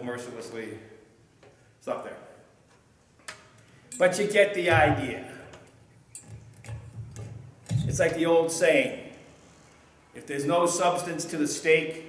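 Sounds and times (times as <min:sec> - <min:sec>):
microphone handling clicks and bumps: 0:04.7 - 0:05.6, 0:06.3 - 0:08.2.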